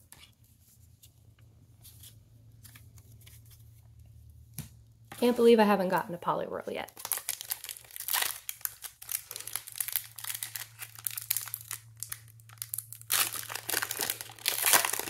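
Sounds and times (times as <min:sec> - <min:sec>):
foil wrapper crinkling and tearing: 0:06.9 - 0:15.0.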